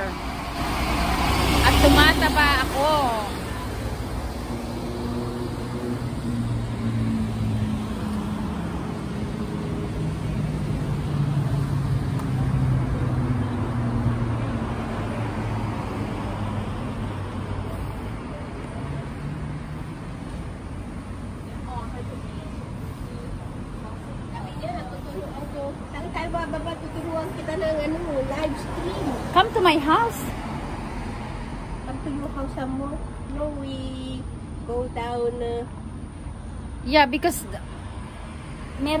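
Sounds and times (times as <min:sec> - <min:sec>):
bus engine pulling away: 0:00.0 - 0:33.3
road traffic noise: 0:00.0 - 0:39.0.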